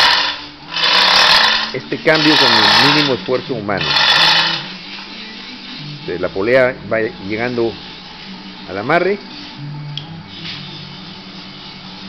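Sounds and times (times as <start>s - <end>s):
chain hoist rattling: 0.0s - 3.2s
background music with low notes: 0.0s - 12.0s.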